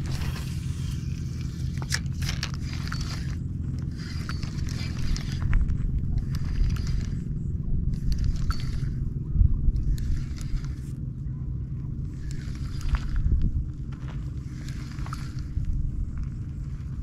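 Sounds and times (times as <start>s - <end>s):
fishing reel whirring and clicking: 0.0s - 11.0s, 12.0s - 16.4s
wind rumble on microphone: 0.0s - 17.0s.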